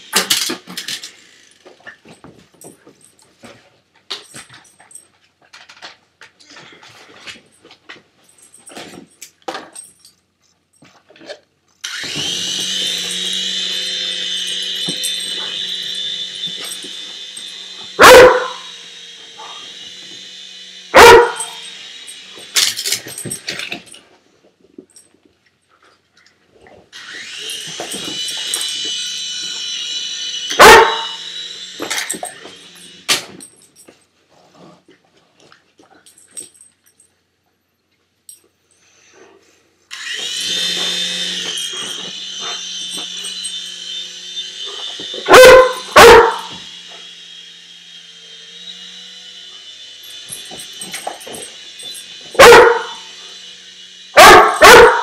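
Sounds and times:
toy helicopter motor whine: 0:00.0 - 0:02.1, 0:11.8 - 0:24.0, 0:26.9 - 0:33.9, 0:39.9 - 0:55.0
puppy barking: 0:18.0 - 0:18.7, 0:21.0 - 0:21.6, 0:30.6 - 0:31.2, 0:45.3 - 0:46.6, 0:52.4 - 0:53.0, 0:54.2 - 0:55.0.

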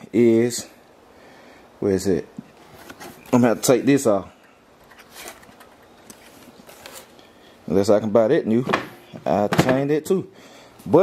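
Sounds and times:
soft handling rustle: 0:02.3 - 0:07.7.

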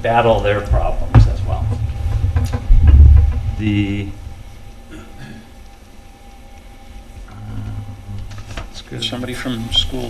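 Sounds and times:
low steady hum: 0:00.0 - 0:10.0
low voice murmuring: 0:07.3 - 0:08.3.

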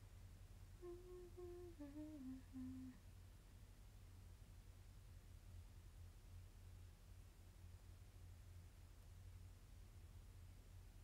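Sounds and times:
woman humming: 0:00.8 - 0:03.0.

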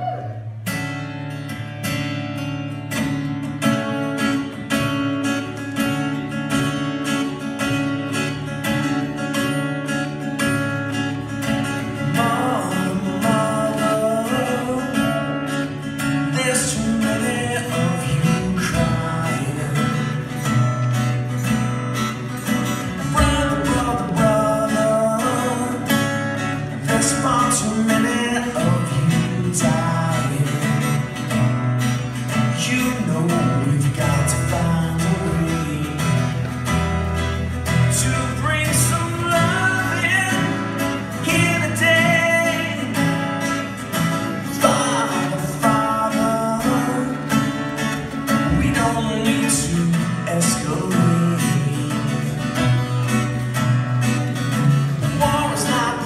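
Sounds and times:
acoustic guitars playing: 0:00.0 - 0:56.0
man singing: 0:11.3 - 0:20.8, 0:22.5 - 0:31.4, 0:32.0 - 0:36.8, 0:37.6 - 0:52.9, 0:54.5 - 0:56.0.

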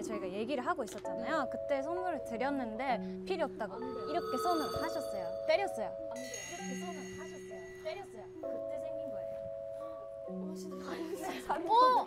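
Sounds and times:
soft sustained background music: 0:00.0 - 0:12.0.

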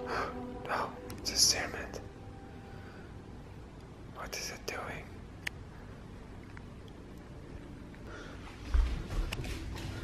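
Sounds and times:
person whispering: 0:00.0 - 0:02.1, 0:04.1 - 0:05.3.

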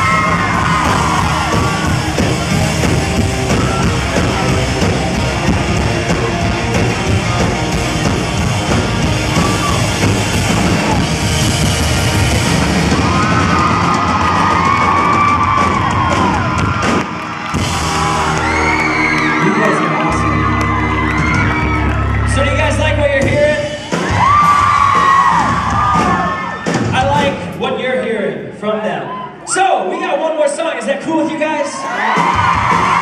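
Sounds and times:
crowd screaming and whooping: 0:00.0 - 0:27.1, 0:29.0 - 0:30.2, 0:31.4 - 0:33.0
rock band playing loud: 0:00.0 - 0:27.6, 0:32.0 - 0:33.0.

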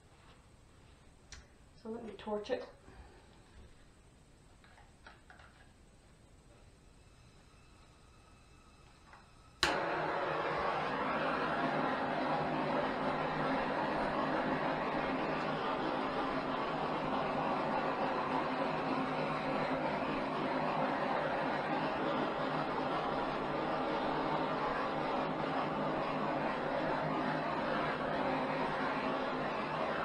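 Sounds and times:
gas torch flame hissing: 0:06.5 - 0:30.0
gas torch clicking alight: 0:08.8 - 0:30.0.

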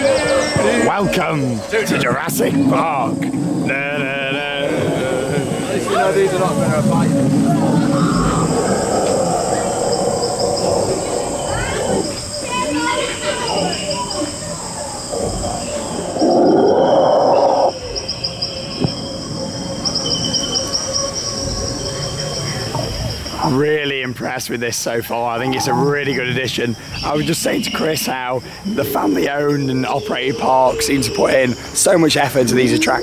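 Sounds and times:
insect chirping: 0:00.0 - 0:33.0.

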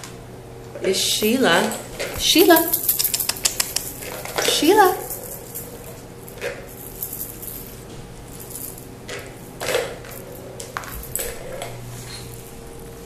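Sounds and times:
plastic ball rattling in track toy: 0:02.5 - 0:05.7, 0:08.5 - 0:11.8.

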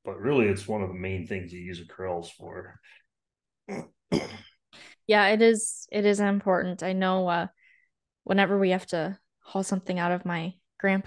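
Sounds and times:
person clearing throat: 0:03.7 - 0:04.6.

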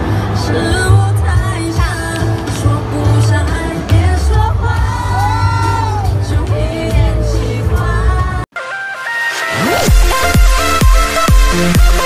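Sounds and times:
synth melody: 0:08.6 - 0:12.0
heavy bass beat: 0:09.8 - 0:12.0.

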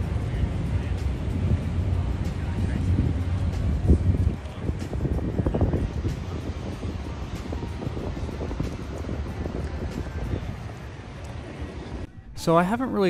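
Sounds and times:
wind buffeting microphone: 0:00.0 - 0:12.4
faint background music: 0:00.0 - 0:13.0.

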